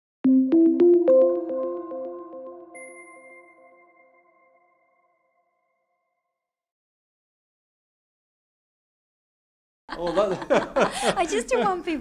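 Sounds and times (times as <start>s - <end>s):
electronic logo jingle: 0.2s - 4.9s
high ping tone: 0.5s - 5.2s.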